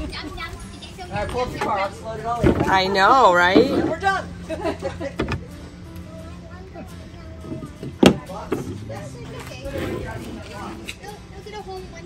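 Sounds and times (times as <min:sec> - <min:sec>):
faint background voices: 0:00.0 - 0:12.0.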